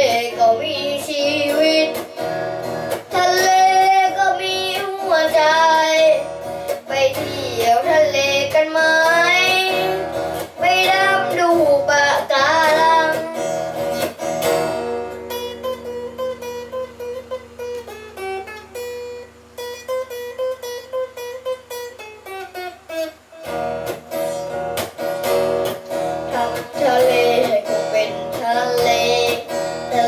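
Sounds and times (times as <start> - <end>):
boy singing into microphone: 0.0 - 14.1, 26.2 - 30.0
electric guitar strumming: 0.0 - 30.0.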